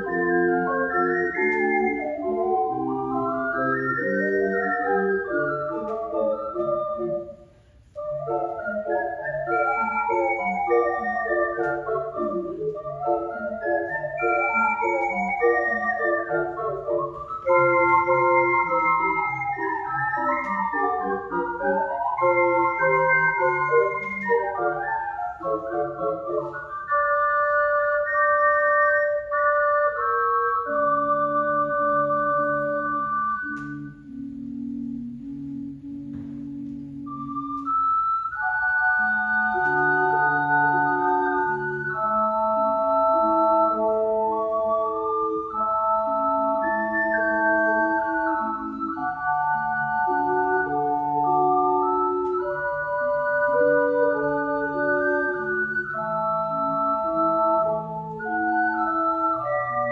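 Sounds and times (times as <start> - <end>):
ocarinas playing in harmony: 0.0 - 59.9.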